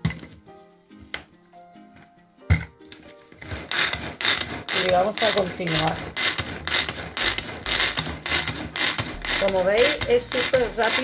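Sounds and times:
pull-cord chopper whirring: 3.4s - 11.0s.

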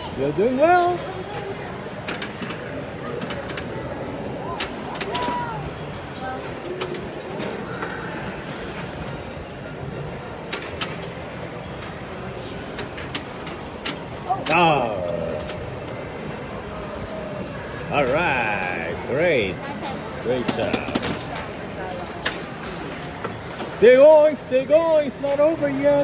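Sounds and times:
chatter of busy hall: 0.0s - 26.0s.

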